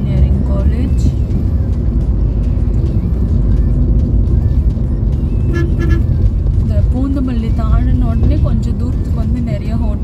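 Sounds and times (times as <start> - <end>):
road and engine rumble: 0.0 - 10.0
car horn toots: 5.4 - 6.2.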